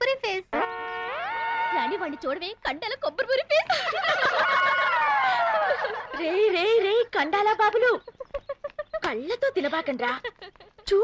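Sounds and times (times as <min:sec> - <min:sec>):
women laughing and shrieking: 0:03.5 - 0:06.5.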